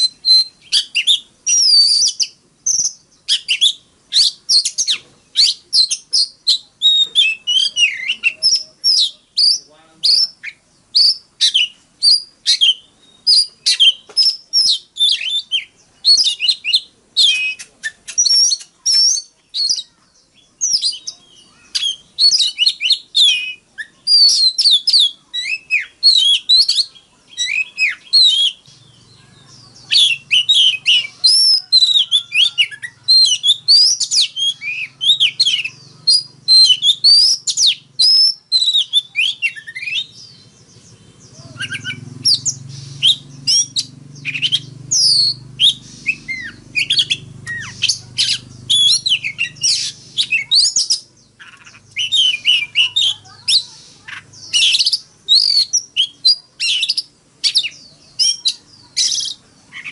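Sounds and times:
bird singing whistles and chirps: 0.0s - 59.9s.

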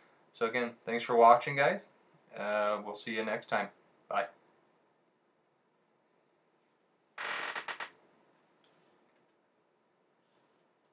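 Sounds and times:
mechanical creak or rattle: 7.2s - 8.0s.

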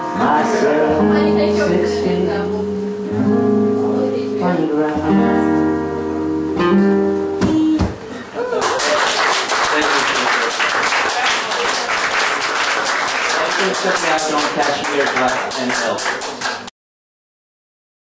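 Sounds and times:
acoustic guitar chords: 0.0s - 8.3s
audience applause: 8.4s - 16.7s.

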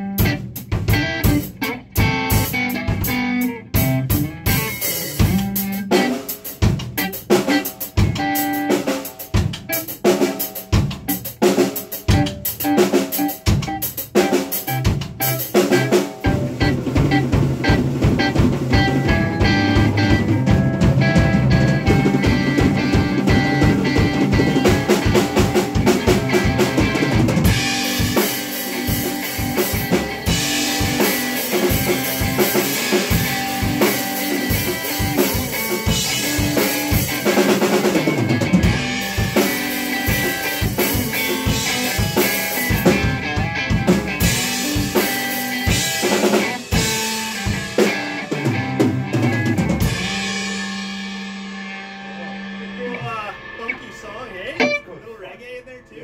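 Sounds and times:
drum kit playing: 0.0s - 56.0s
electric guitar riffs: 0.0s - 56.0s
held guitar note ringing: 49.9s - 56.0s.

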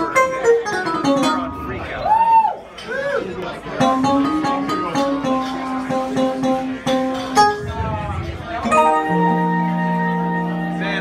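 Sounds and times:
loose instrument notes: 0.0s - 2.2s, 3.8s - 11.0s.

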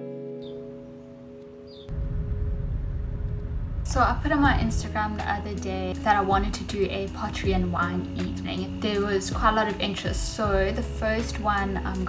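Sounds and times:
guitar music: 0.0s - 12.0s
low rumble: 1.9s - 7.7s.

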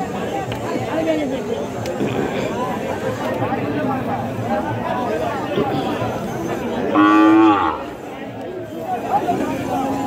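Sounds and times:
crowd chatter: 0.0s - 10.0s
cow mooing: 6.9s - 7.9s.

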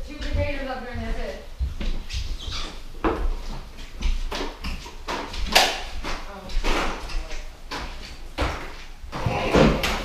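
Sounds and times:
footsteps on wooden floor: 0.0s - 10.0s.

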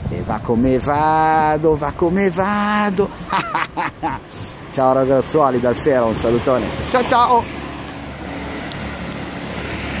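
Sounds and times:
electric unicycle rolling on asphalt: 4.3s - 10.0s.

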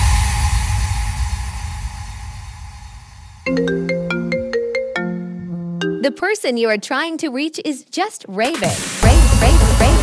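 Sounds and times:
marimba-like synth melody: 3.5s - 6.2s.

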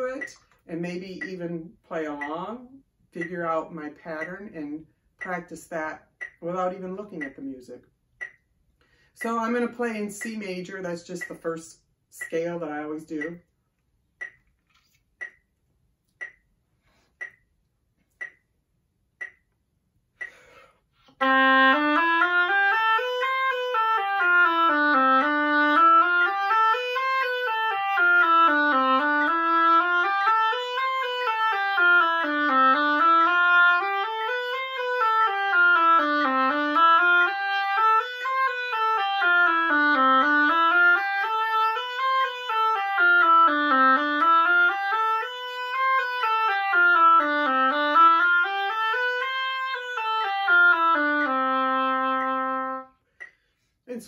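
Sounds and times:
oboe playing a scale: 21.2s - 53.0s.

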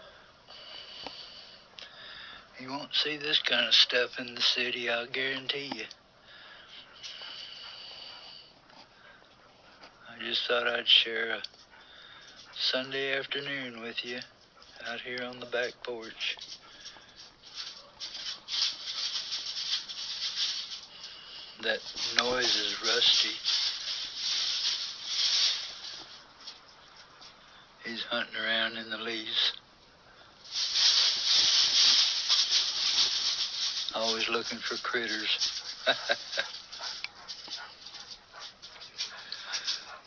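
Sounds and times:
dog rustling through leaves: 17.5s - 26.2s, 30.5s - 40.0s.

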